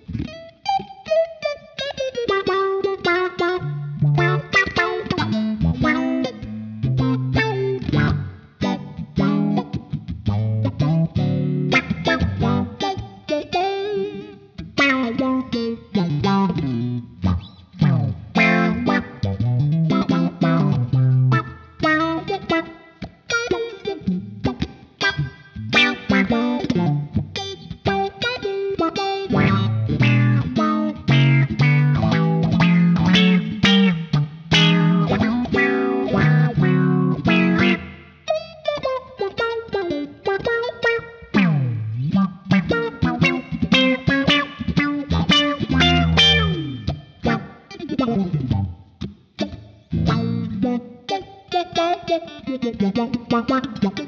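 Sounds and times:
funky electric guitar with wah tone: 0:00.0 - 0:54.0.

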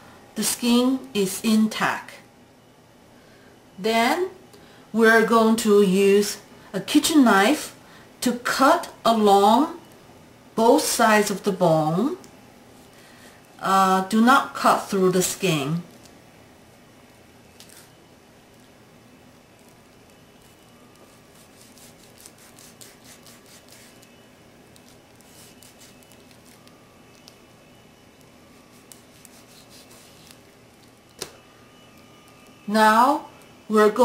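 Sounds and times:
soft squishing: 0:15.8 - 0:27.5
knife slicing raw meat: 0:21.1 - 0:24.0.

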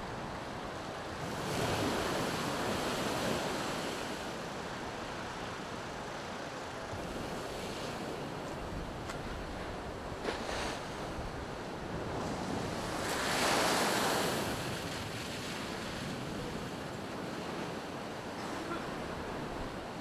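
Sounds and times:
roar of surf: 0:00.0 - 0:20.0
storm waves breaking on sea wall: 0:00.0 - 0:20.0.

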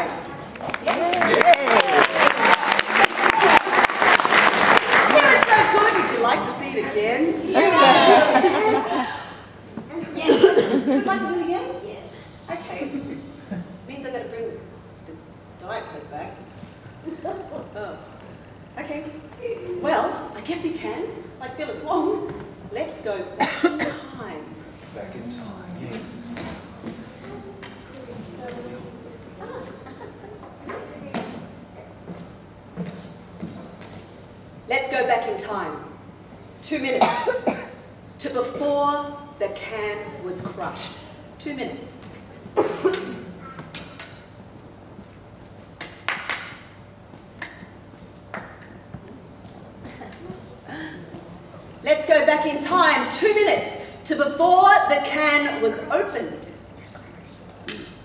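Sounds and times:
cough: 0:23.4 - 0:24.2, 0:37.0 - 0:37.8, 0:42.6 - 0:43.6.

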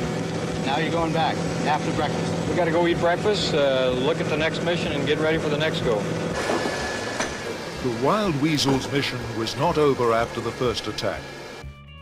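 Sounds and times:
steady mechanical noise with hiss: 0:00.0 - 0:11.7.

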